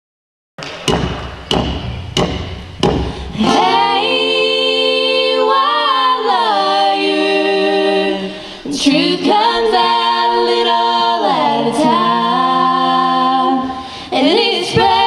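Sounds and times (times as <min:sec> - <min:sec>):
sharp knocks: 0:00.6 - 0:03.4
group singing a cappella harmony: 0:02.9 - 0:15.0.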